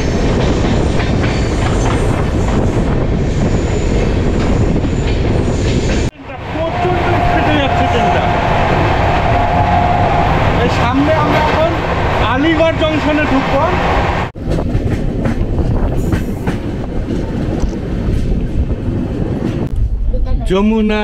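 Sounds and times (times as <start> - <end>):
train wheels on track: 0.0 - 19.7
rough train running noise: 0.0 - 21.0
short knocks and gusts: 13.5 - 20.1.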